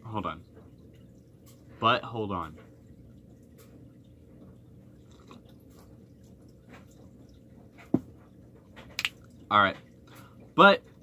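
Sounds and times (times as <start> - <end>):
person gulping: 5.0 - 5.7.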